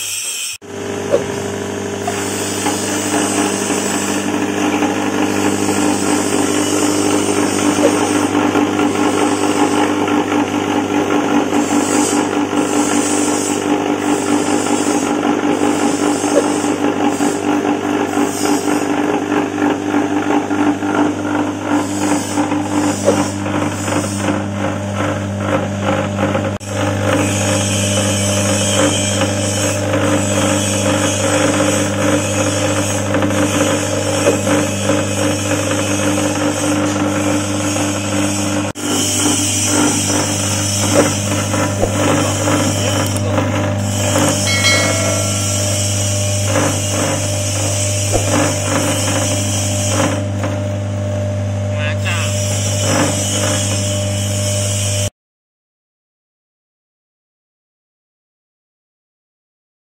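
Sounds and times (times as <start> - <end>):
electric motor hum: 0.6 - 19.7, 38.9 - 51.7
grinding machine churning rattle: 0.7 - 51.7, 52.4 - 55.1.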